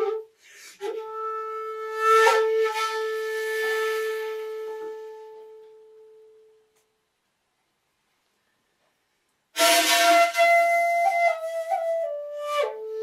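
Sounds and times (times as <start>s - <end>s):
bamboo flute long note: 0.0s - 6.6s, 9.6s - 13.0s.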